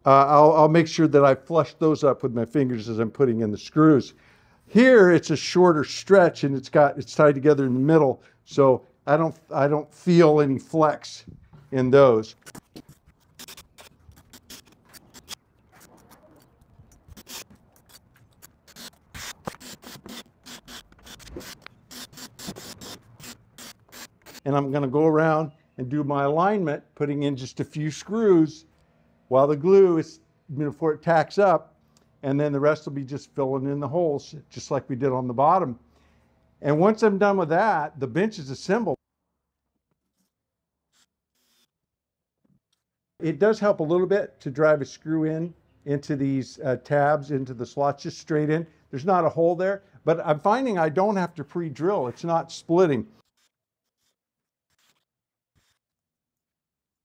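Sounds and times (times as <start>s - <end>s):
tools and screws clicking on wood: 12.4s - 24.4s.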